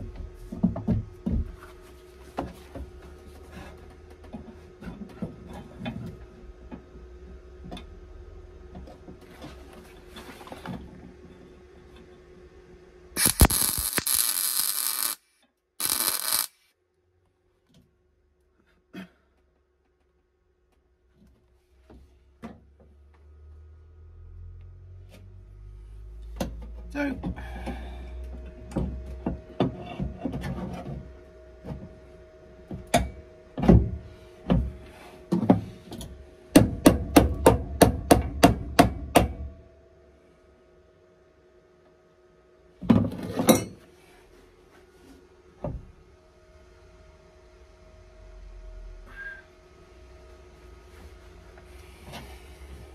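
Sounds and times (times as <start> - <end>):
welder spot-welding: 13.2 - 16.7.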